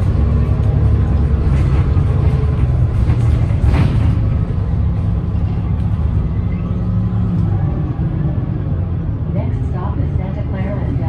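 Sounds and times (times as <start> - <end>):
bus engine rumble: 0.0 - 11.0
road noise: 0.0 - 11.0.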